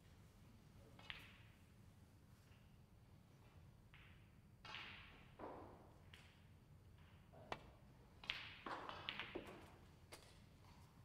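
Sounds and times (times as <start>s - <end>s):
snooker balls clicking: 3.5s - 10.4s.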